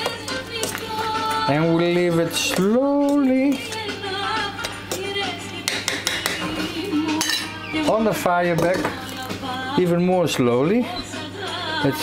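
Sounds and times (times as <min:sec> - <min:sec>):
background music: 0:00.0 - 0:12.0
spoon clicking against metal pot: 0:05.6 - 0:06.4.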